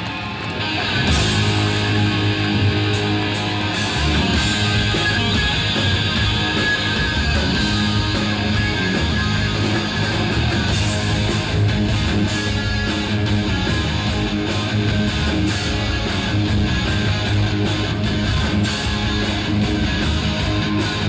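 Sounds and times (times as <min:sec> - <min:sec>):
bass guitar: 0:00.0 - 0:21.0
distorted electric guitars: 0:00.0 - 0:21.0
drum kit: 0:00.0 - 0:21.0.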